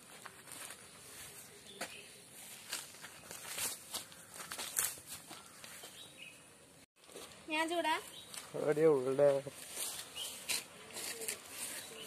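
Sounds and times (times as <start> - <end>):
leaves and stems rustling: 0.0 - 6.0, 7.0 - 12.0
footsteps through grass: 0.0 - 6.1, 7.0 - 12.0.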